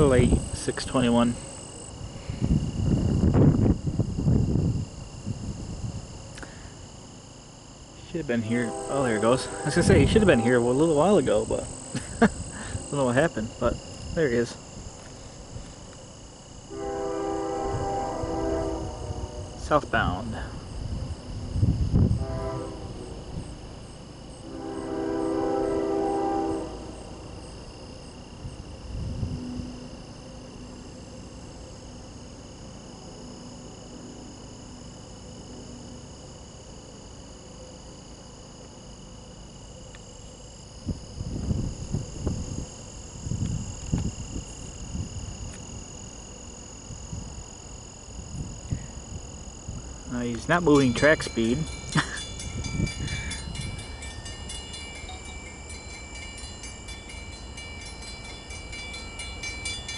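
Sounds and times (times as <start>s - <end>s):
insects chirring: 0.0s - 59.9s
train horn blast: 8.4s - 11.2s, 16.7s - 19.8s, 22.1s - 23.2s, 24.4s - 27.2s.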